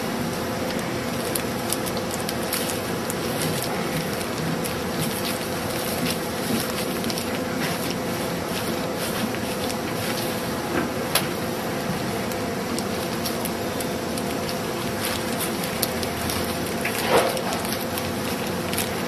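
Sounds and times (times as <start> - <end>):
machine hum and hiss: 0.0 - 19.0.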